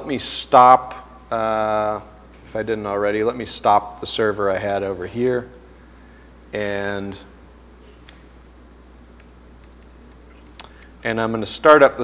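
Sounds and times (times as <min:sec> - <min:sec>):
steady low hum: 0:00.0 - 0:12.0
laptop keyboard clicks: 0:09.2 - 0:10.9.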